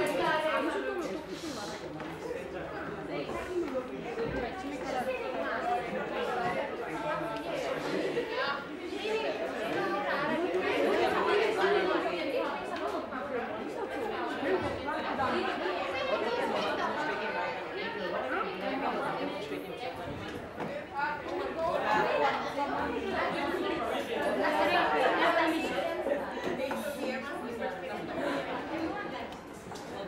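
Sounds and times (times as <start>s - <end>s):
classroom chatter: 0.0s - 30.0s.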